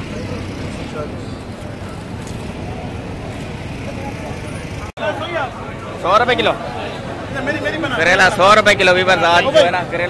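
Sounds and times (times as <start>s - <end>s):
faint voices: 0.0s - 10.0s
road traffic rumble: 0.0s - 10.0s.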